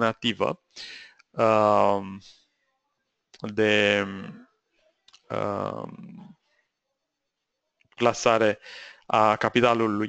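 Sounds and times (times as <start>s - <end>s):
man's hesitation sound: 0.0s - 2.2s, 3.4s - 4.4s, 5.3s - 6.3s.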